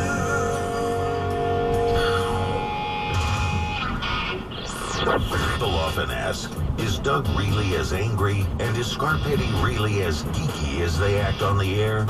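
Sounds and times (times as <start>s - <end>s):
car radio music: 0.0s - 12.0s
radio promo with voices: 1.9s - 12.0s.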